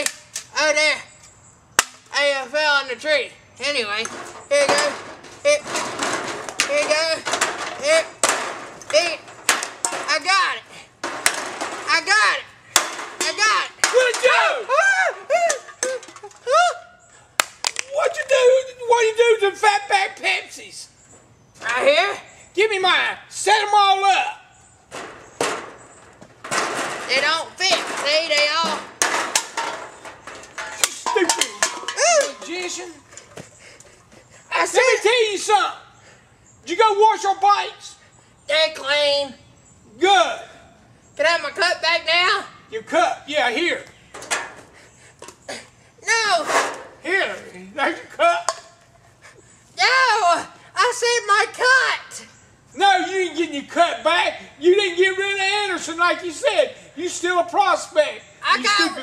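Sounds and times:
drink cans knocking on table: 27.7 - 33.4.

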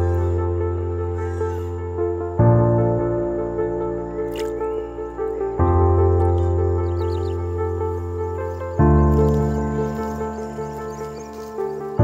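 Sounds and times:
slow sustained chords: 0.0 - 12.0.

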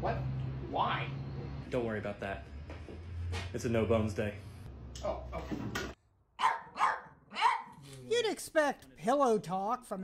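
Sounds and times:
dog barking: 6.4 - 7.8.

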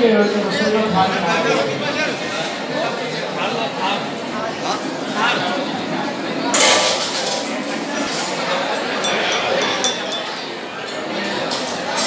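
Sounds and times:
murmur of voices: 0.0 - 12.0
light metallic clinks: 8.9 - 10.6.

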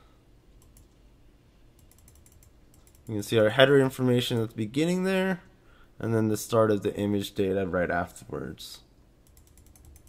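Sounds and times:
faint computer mouse clicks: 0.6 - 1.0.

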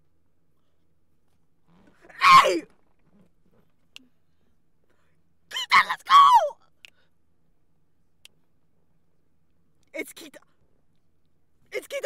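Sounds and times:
woman squealing: 2.1 - 2.6, 5.5 - 6.6.

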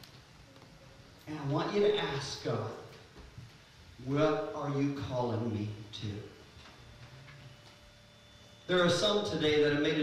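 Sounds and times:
man's amplified voice: 1.3 - 3.0, 4.0 - 6.4, 8.7 - 10.0
faint steady tone: 3.6 - 10.0.

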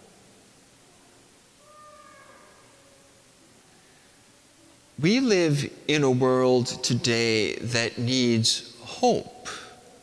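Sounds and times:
echo of spoken words: 5.0 - 10.0.

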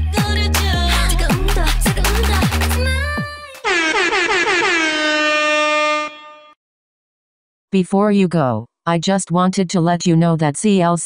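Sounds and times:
sustained horn blast: 3.6 - 6.6.

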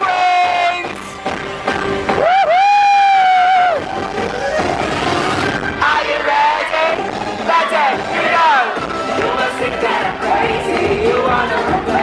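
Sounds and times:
pop band playing: 3.5 - 12.0
woman singing: 9.2 - 12.0.

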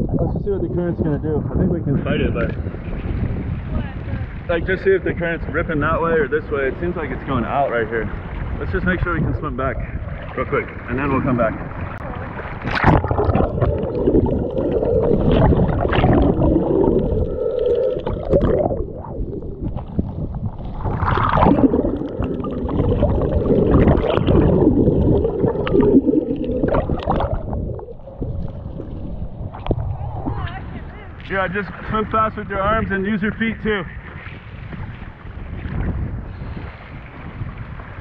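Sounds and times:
muffled water sloshing and gurgling: 0.0 - 38.0
loud water splashes: 6.6 - 32.6.

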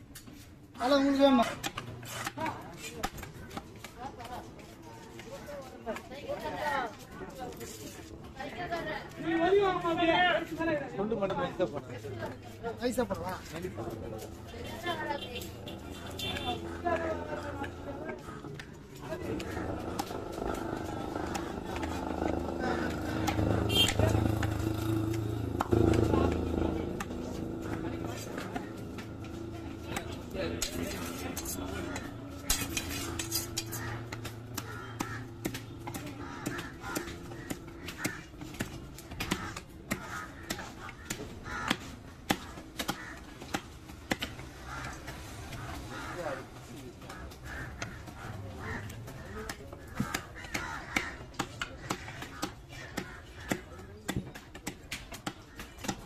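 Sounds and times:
voices talking: 0.6 - 56.0
motor engine running: 19.2 - 37.9.

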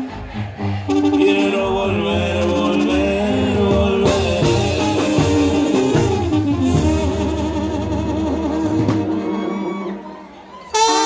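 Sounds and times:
person singing: 0.9 - 6.1
live band with bass and drums: 2.6 - 10.0.

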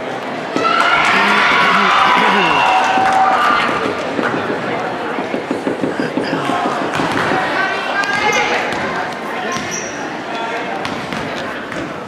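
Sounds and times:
people's voices: 0.0 - 12.0
basketballs bouncing on hardwood: 5.3 - 7.6.

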